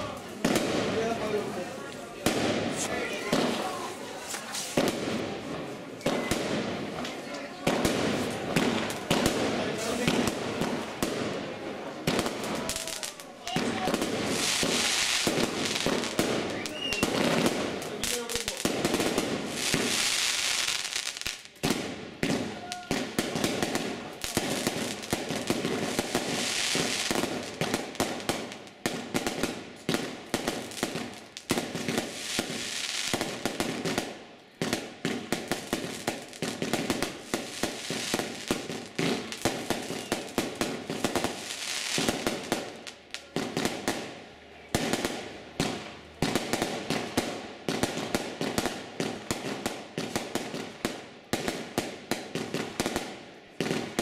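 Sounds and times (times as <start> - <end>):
fireworks crackle: 0.0 - 54.0
fireworks shots and bursts: 0.0 - 54.0.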